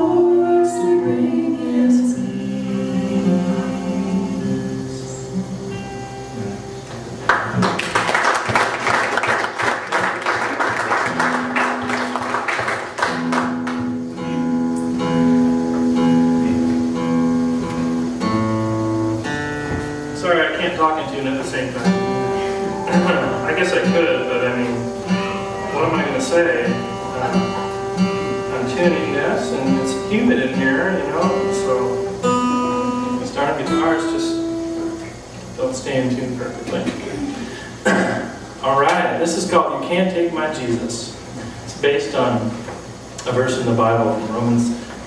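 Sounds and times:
guitar chords strummed: 0.0 - 7.8, 11.0 - 38.7
acoustic guitar chord ringing: 0.0 - 39.4
audience applauding: 7.2 - 14.0
guitar strings plucked for tuning: 13.6 - 35.6.

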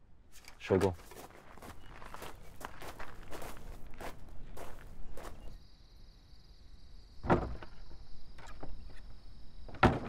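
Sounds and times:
footsteps on dirt: 0.4 - 5.6.

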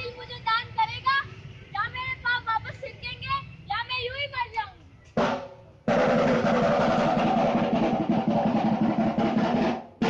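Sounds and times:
drum roll: 5.2 - 10.0.

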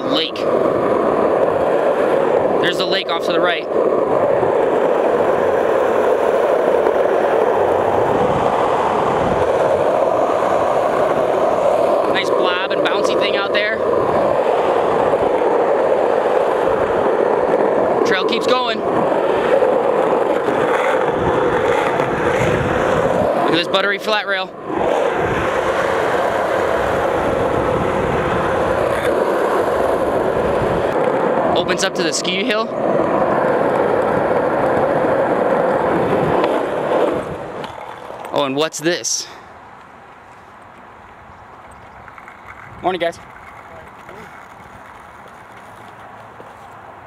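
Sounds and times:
skateboard wheels rolling on asphalt: 0.0 - 47.0.

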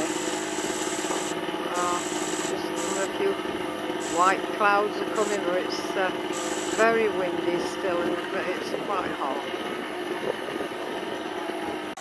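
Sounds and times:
power sander running: 0.0 - 8.8
wind buffeting microphone: 6.2 - 11.9.

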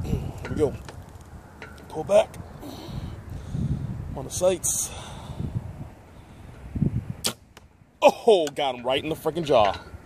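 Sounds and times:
sharp crack: 7.2 - 7.7.

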